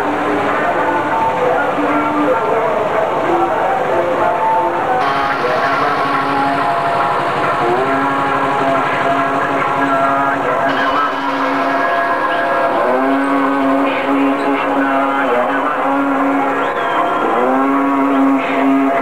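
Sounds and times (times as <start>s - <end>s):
steady noisy background: 0.0s - 19.0s
wind instrument long held notes: 0.0s - 19.0s.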